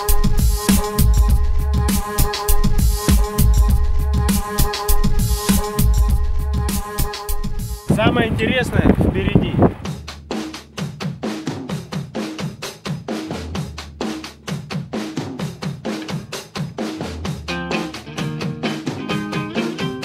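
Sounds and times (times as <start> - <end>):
drum-kit beat with bass line: 0.0 - 20.0.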